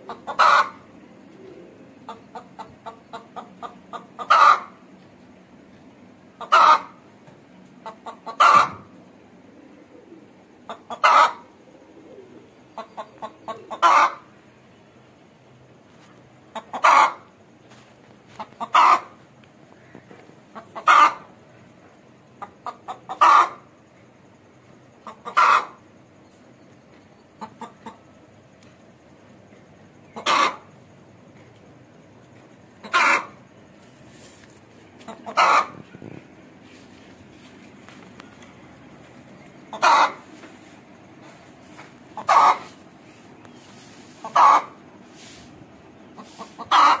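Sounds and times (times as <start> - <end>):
hen clucking and calling: 0.0 - 14.8, 16.5 - 17.4, 18.3 - 24.0, 24.6 - 28.4, 29.8 - 31.5, 32.2 - 34.1, 34.8 - 45.0, 45.8 - 47.0
chicken call: 0.3 - 0.8, 8.3 - 8.8, 23.1 - 23.6, 30.2 - 30.6, 32.8 - 33.4, 39.7 - 40.3, 42.2 - 42.8, 44.2 - 44.8, 46.2 - 47.0.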